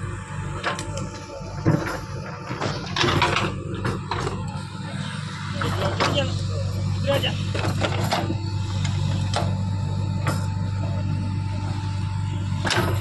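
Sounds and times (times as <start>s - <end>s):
diesel engine running under load: 0.0s - 13.0s.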